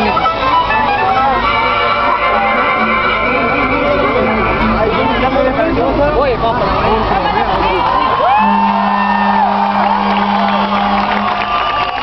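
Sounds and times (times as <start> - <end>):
steady low tone: 0.0 - 7.0, 8.3 - 12.0
crowd cheering and whooping: 7.6 - 12.0.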